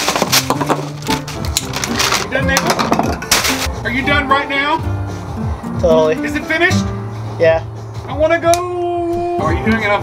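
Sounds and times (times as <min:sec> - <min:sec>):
plastic wrapping crinkling: 0:00.0 - 0:02.4
background music with bass line: 0:00.0 - 0:10.0.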